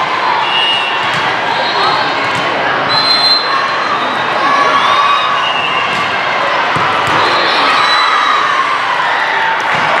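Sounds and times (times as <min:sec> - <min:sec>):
many voices echoing in a hall: 0:00.0 - 0:10.0
volleyballs thudding: 0:01.0 - 0:01.4, 0:05.8 - 0:07.5, 0:09.6 - 0:10.0.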